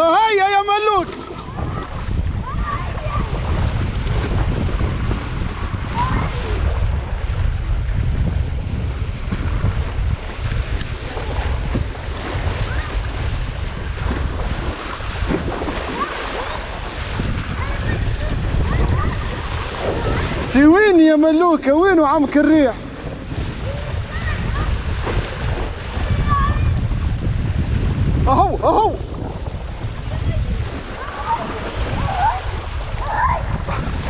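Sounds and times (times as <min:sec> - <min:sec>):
water rushing along hull: 0:00.0 - 0:34.0
wind noise on microphone: 0:00.0 - 0:34.0.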